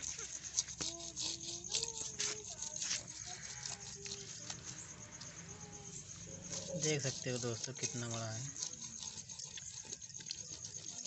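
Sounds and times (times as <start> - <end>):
scraping fish scales: 0.0 - 11.0.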